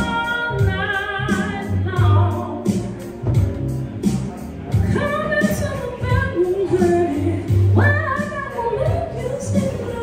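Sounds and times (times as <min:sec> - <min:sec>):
woman singing with vibrato: 0:00.0 - 0:02.7, 0:04.9 - 0:10.0
deep bass line accompaniment: 0:00.0 - 0:10.0.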